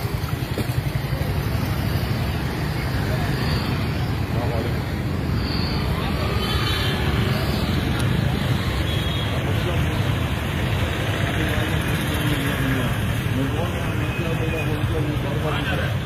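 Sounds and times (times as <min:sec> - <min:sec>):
motor traffic: 0:00.0 - 0:16.0
people talking: 0:00.6 - 0:05.0, 0:09.3 - 0:16.0.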